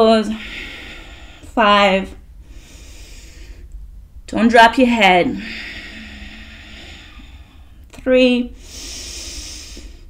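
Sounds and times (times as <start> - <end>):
low room hum: 0.0 - 10.0
sharp intake of breath: 5.4 - 7.8, 8.6 - 10.0
person exhaling with a hiss: 8.6 - 10.0.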